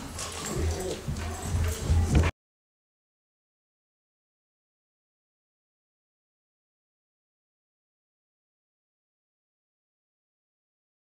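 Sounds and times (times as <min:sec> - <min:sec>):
footsteps: 0:00.0 - 0:02.3
indistinct voices: 0:00.0 - 0:02.3.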